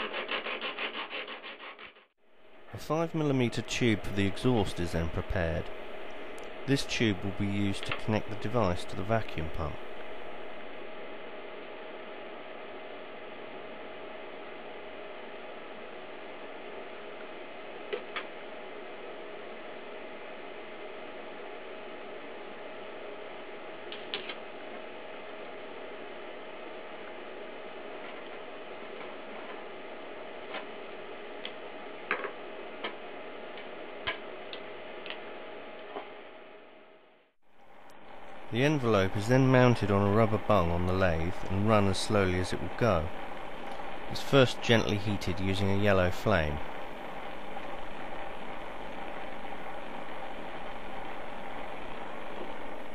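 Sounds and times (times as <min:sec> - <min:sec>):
mechanical hum: 0:00.0 - 0:52.9.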